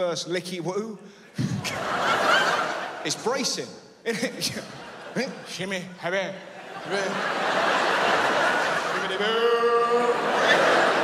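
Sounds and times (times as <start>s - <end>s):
audience laughing: 1.4s - 3.5s, 4.3s - 11.0s.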